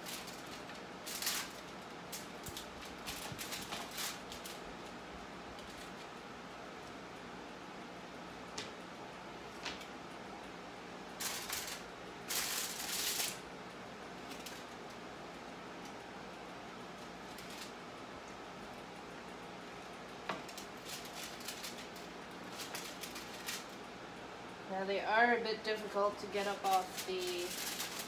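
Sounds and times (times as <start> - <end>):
foil crinkling and scraping: 0.0 - 4.6, 11.2 - 13.4, 17.2 - 17.7, 20.4 - 23.8, 25.8 - 28.0
faint steady hum: 0.0 - 28.0.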